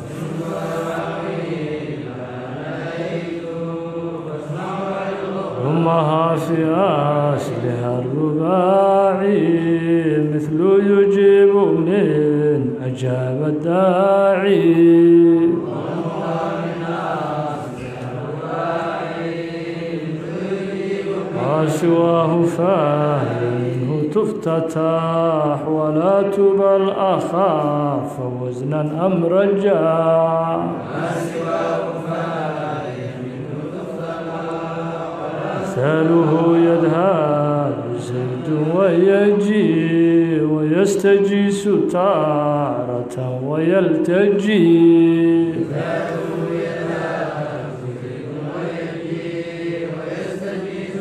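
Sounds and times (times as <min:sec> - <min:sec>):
man chanting melodic recitation: 0:00.0 - 0:18.4, 0:19.4 - 0:51.0.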